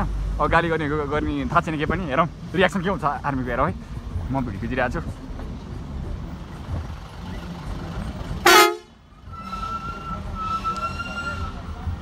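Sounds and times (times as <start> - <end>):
vehicle horn blast: 8.4 - 8.9.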